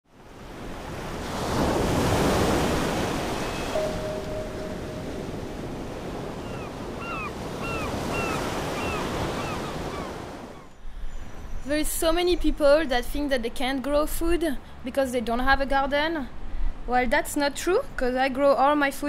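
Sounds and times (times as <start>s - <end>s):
ocean surf washing: 0.1s - 10.7s
bird calling: 3.3s - 10.7s.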